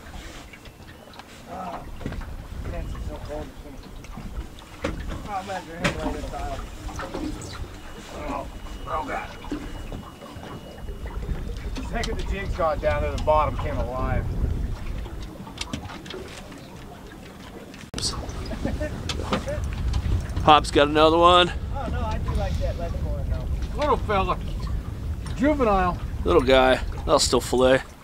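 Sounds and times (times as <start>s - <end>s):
wind rumble on microphone: 0.0s - 28.0s.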